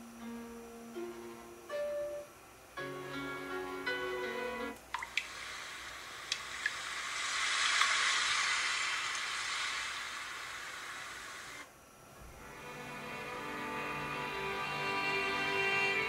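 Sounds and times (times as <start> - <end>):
noisy water-like wash: 4.8 - 11.7.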